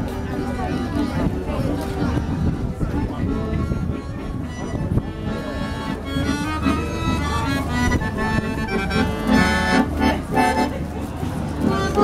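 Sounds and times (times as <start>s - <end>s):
accordion tune: 0.0s - 12.0s.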